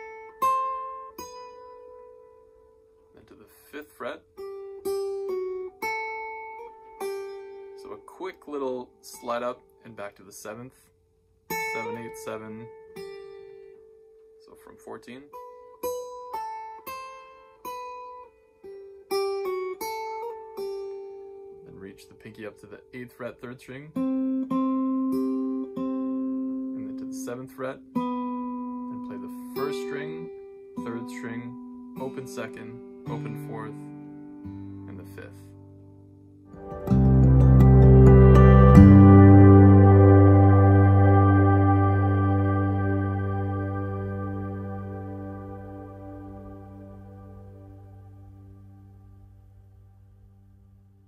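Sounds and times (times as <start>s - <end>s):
acoustic guitar notes plucked: 0.0s - 50.5s.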